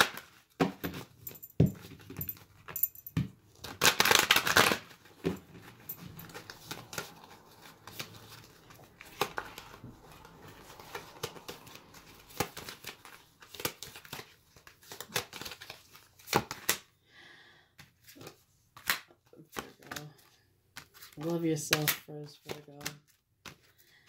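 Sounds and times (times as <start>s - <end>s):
cards being shuffled: 3.5s - 16.9s, 17.8s - 24.0s.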